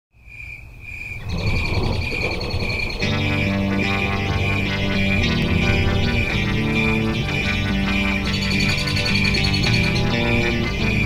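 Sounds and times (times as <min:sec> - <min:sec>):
insect-like trill: 0:00.3 - 0:11.0
low rumble: 0:01.2 - 0:07.2.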